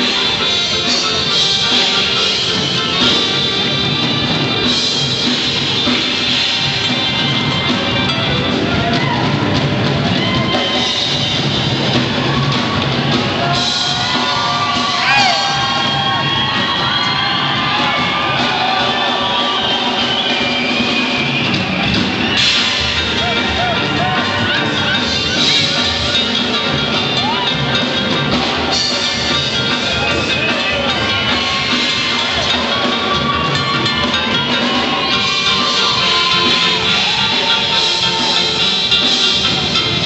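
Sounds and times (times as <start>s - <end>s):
crowd cheering and whooping: 0.0s - 40.0s
live band music: 0.0s - 40.0s.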